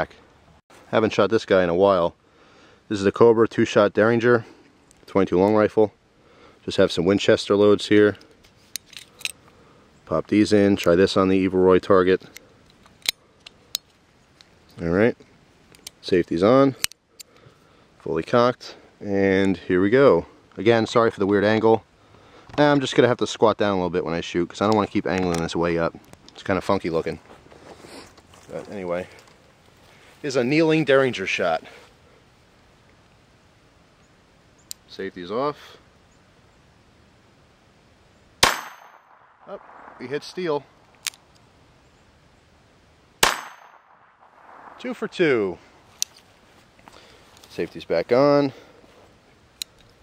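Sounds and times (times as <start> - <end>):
high ring of steel target hit: 38.4 - 39.2, 43.2 - 43.9
gunshot: 38.4 - 40.5, 43.2 - 45.1
sharp metallic gun clicks: 38.4 - 41.4, 43.2 - 45.1.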